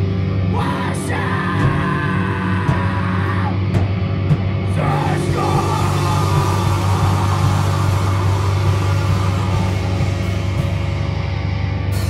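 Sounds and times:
punk band held low chord: 0.0 - 12.0.

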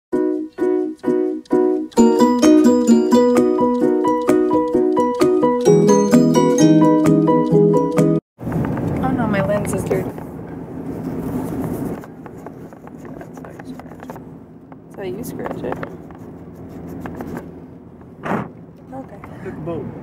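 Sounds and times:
car running hum: 8.4 - 20.0
muffled voices: 12.8 - 14.2.

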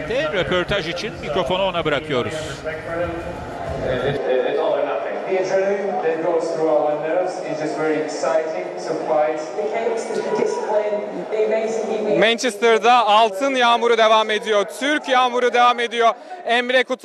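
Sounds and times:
man speaking: 0.0 - 11.1, 12.2 - 17.0.

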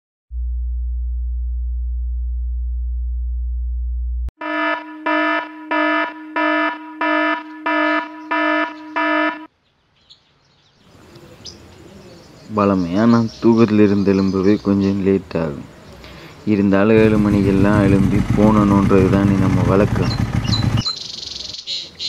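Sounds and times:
low electronic hum: 0.3 - 8.1
electronic alarm beeps: 4.4 - 9.5
faint background noise: 9.5 - 17.0.

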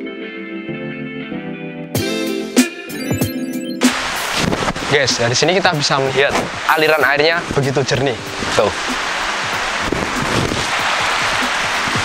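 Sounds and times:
river rushing over stones: 3.9 - 12.0.

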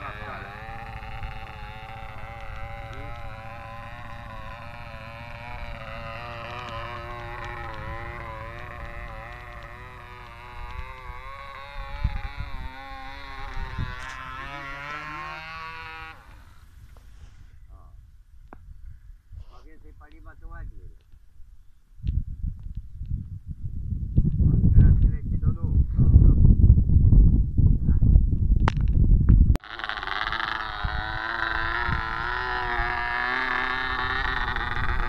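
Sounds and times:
model airplane motor buzzing: 0.0 - 17.9, 29.6 - 35.0.

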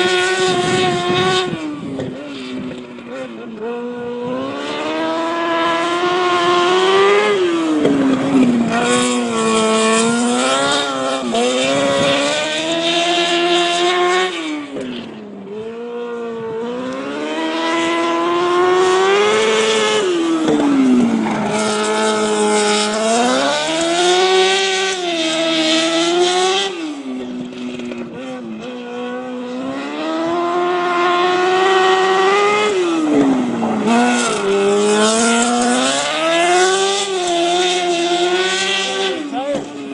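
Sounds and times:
race car engine accelerating: 0.0 - 39.9.

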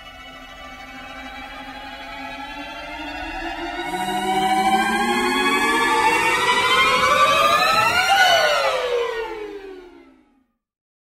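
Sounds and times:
siren-like gliding tone: 1.0 - 10.3.

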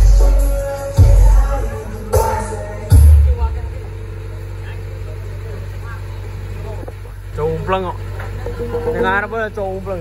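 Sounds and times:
steady low hum: 0.0 - 10.0
faint voices: 0.6 - 10.0.

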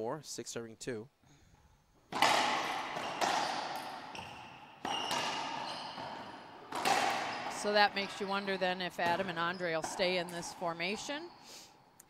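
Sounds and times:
racquetball cracking off walls: 2.1 - 10.6
shoe squeak on hardwood: 2.9 - 10.3.

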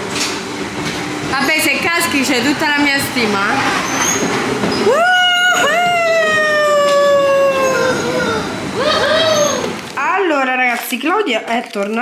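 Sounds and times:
high-pitched voice whooping: 4.8 - 9.8.

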